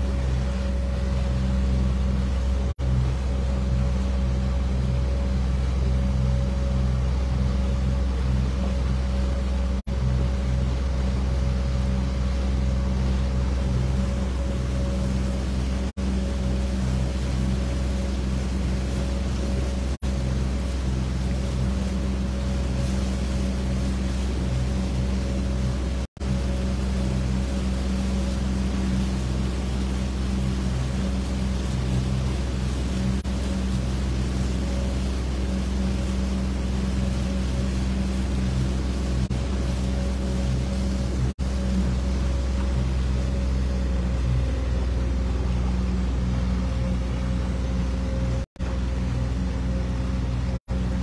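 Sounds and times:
outboard motor running: 0.0s - 51.0s
water rushing: 0.0s - 51.0s
wind: 0.0s - 51.0s.

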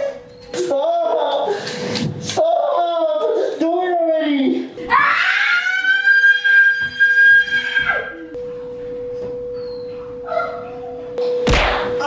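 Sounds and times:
heavy thunk: 11.4s - 12.0s.

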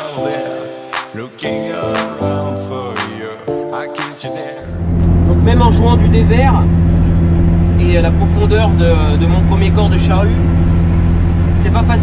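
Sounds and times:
tractor diesel engine under load: 4.6s - 12.0s.

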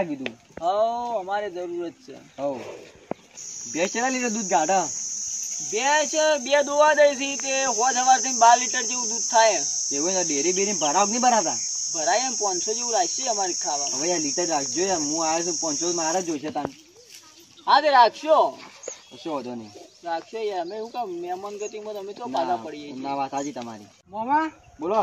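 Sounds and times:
cricket chirring: 0.0s - 24.0s
people talking: 3.6s - 4.9s, 5.6s - 18.6s.

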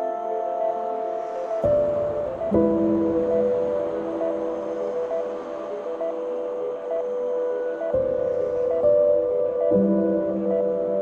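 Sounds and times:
slow ambient music: 0.0s - 11.0s.

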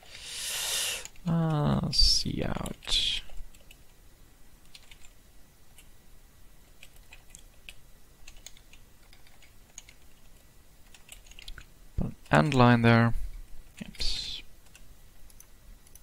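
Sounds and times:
keyboard typing: 4.6s - 5.2s, 6.8s - 12.7s.

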